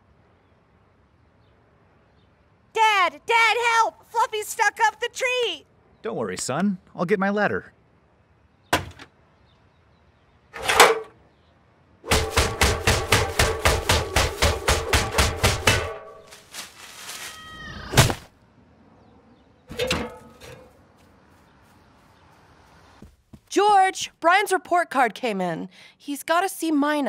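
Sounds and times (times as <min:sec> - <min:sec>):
metal ladder knocks: 0:10.6 - 0:11.1, 0:12.1 - 0:16.4, 0:19.7 - 0:20.7
loud metal hit: 0:12.1 - 0:16.4
ringing metallic clanks: 0:19.7 - 0:20.7.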